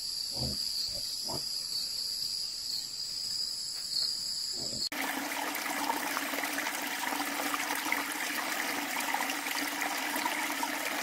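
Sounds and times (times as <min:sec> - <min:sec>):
stream trickling over rocks: 0:04.9 - 0:11.0.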